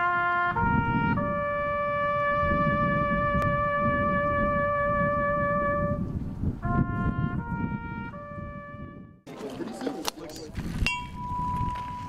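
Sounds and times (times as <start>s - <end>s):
wind instrument slow tune: 0.0s - 9.2s, 11.1s - 12.0s
tubular bell ringing: 10.9s - 12.0s.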